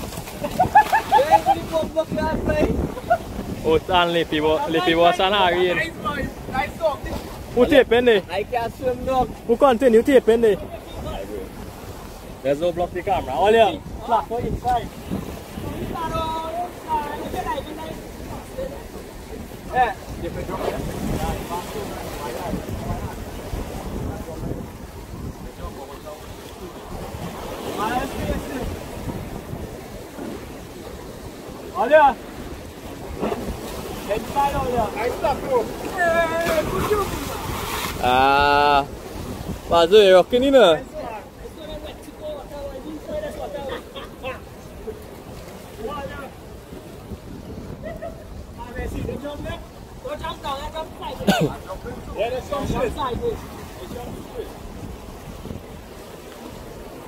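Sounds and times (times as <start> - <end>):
sea water washing against rocks: 0.0 - 57.0
wind buffeting microphone: 0.0 - 57.0.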